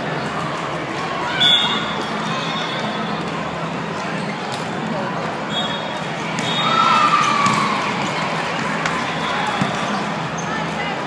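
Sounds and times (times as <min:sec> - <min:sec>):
volleyball hits: 0:06.3 - 0:07.9.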